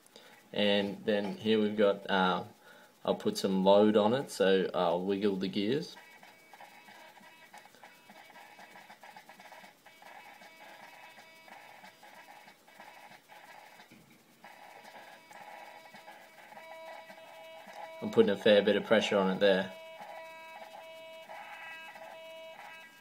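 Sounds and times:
servo motor whine: 14.5s - 23.0s.

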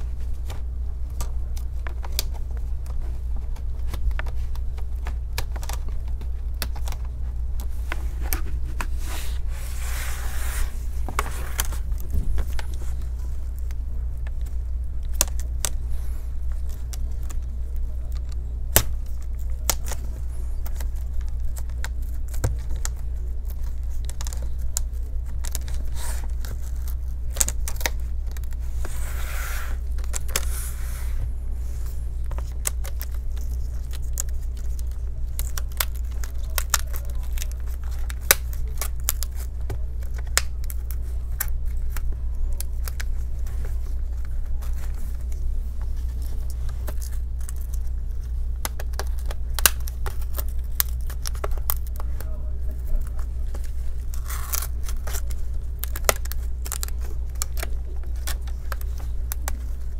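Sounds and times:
steady low hum: 0.0s - 59.9s
tape tearing and scraping: 3.6s - 13.1s, 15.1s - 52.2s, 52.8s - 59.9s.

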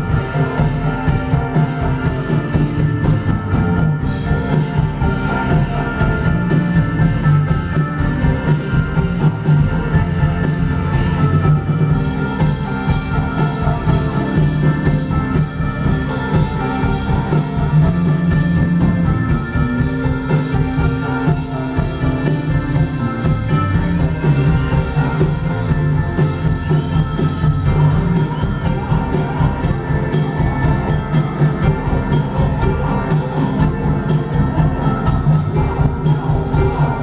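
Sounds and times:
drum kit with cymbal: 0.0s - 37.0s
electric bass low notes: 0.0s - 37.0s
keyboard chords: 0.0s - 37.0s.

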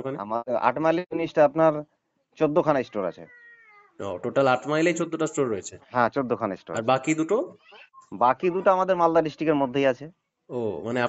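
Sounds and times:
speech over telephone: 6.7s - 8.8s.

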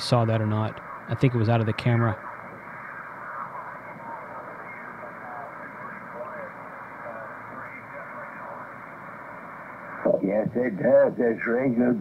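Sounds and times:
faint voice over radio: 0.0s - 12.0s
radio static: 0.0s - 12.0s.

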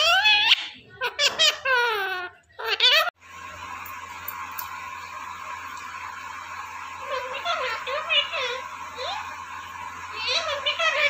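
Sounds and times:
parakeet vocal sounds: 0.0s - 3.2s, 7.1s - 11.0s.

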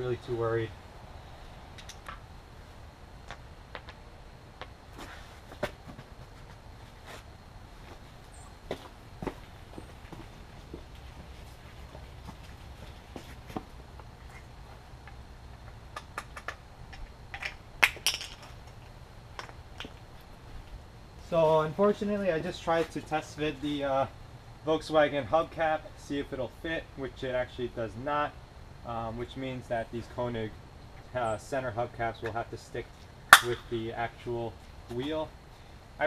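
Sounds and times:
steady low background noise: 0.0s - 36.0s
wheel and tyre being handled: 4.6s - 20.0s.

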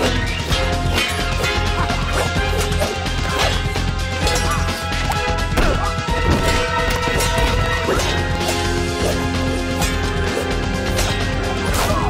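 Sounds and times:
blade clashes and hits: 0.0s - 12.0s
driving film score with heavy beat: 0.0s - 12.0s.

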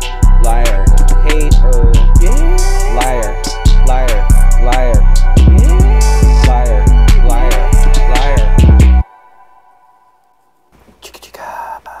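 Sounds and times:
person whispering: 11.0s - 12.0s.

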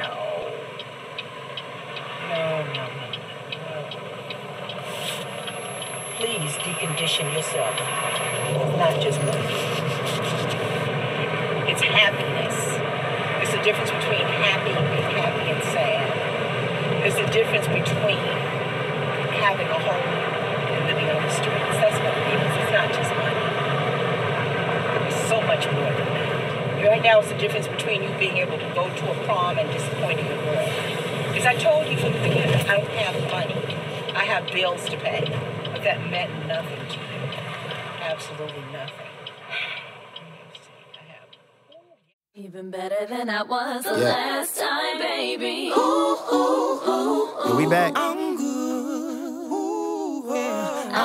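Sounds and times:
steady background rumble: 0.0s - 51.0s
faint indistinct voices: 43.9s - 44.3s, 47.4s - 48.1s.

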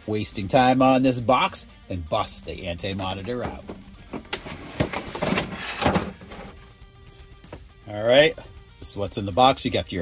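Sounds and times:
soft background music: 0.0s - 10.0s
knocks and scrapes of packaging: 3.4s - 6.6s.

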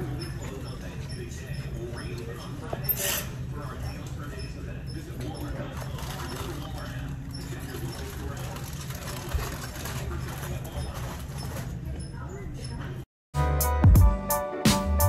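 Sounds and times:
indistinct distant voices: 0.0s - 13.0s.

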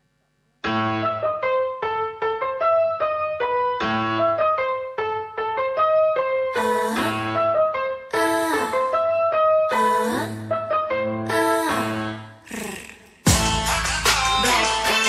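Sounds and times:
staccato keyboard melody: 0.6s - 12.1s, 13.3s - 15.0s
bass line: 13.3s - 15.0s
dance backing track: 13.3s - 15.0s.

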